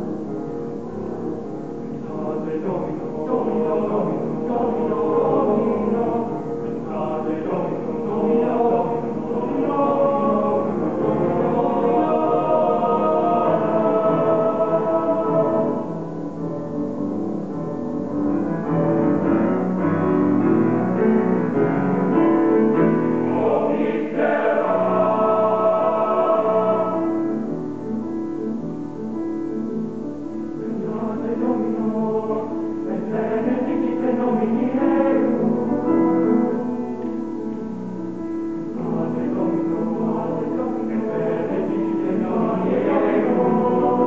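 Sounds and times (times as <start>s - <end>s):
piano accompaniment: 0.0s - 44.0s
male choir singing: 1.8s - 16.4s, 20.3s - 27.5s, 30.6s - 37.6s, 38.7s - 44.0s.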